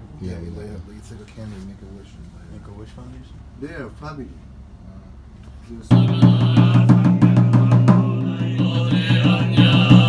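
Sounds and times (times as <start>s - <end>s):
large drum beaten rapidly: 5.9s - 10.0s
monotone chanting: 5.9s - 10.0s.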